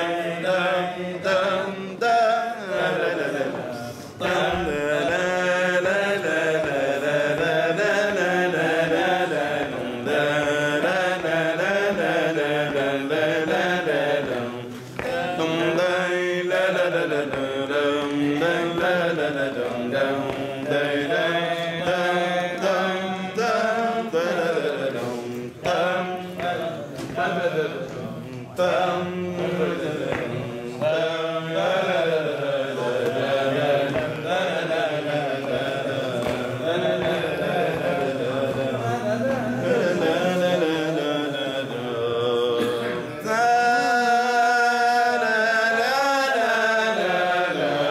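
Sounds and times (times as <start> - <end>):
singer breathing: 3.8 - 4.2.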